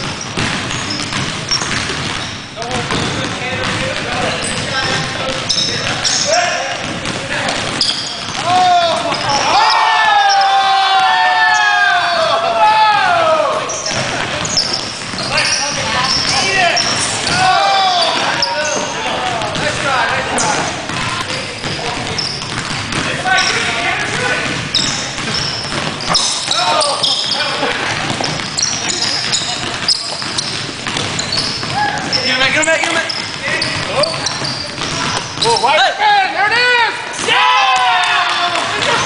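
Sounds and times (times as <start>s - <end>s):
basketball bouncing: 0.0s - 35.7s
sneakers squeaking: 0.0s - 38.0s
players calling out: 0.0s - 39.0s.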